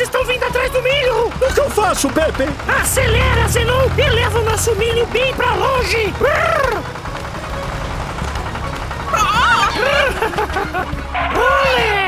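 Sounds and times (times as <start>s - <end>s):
cartoon background music: 0.0s - 12.0s.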